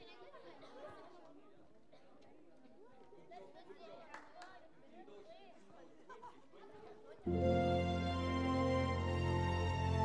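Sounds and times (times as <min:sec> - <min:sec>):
faint chatter of children: 0:00.0 - 0:07.5.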